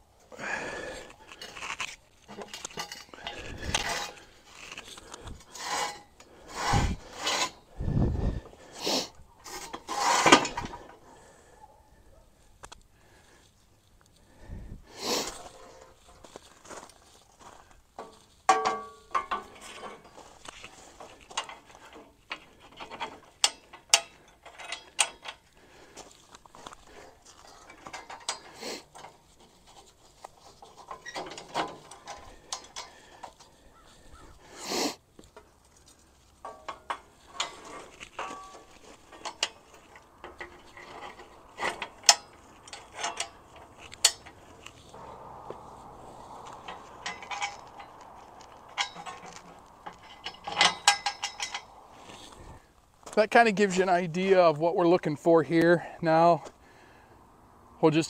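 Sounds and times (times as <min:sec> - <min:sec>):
metal clanks and rattles: 0:01.2 - 0:08.8, 0:09.4 - 0:11.2, 0:15.3 - 0:34.3, 0:35.2 - 0:54.6
metallic ring: 0:18.5 - 0:20.1, 0:40.4 - 0:52.2.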